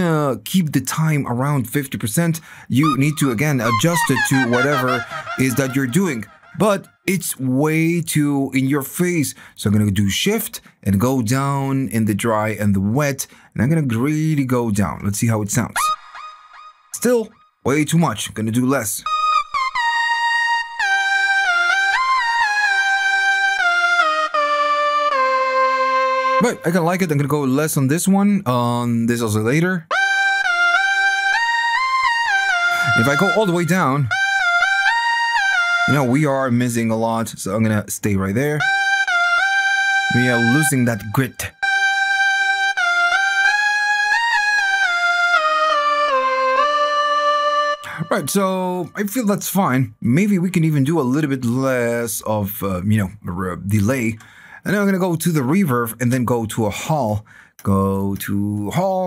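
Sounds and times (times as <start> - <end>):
synthesizer lead melody: 2.7 - 7.1, 19.0 - 27.1, 29.9 - 36.9, 38.6 - 49.1.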